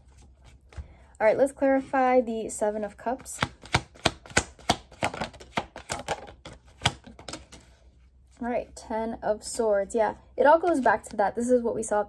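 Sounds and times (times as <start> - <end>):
cards being shuffled: 3.4 - 7.8.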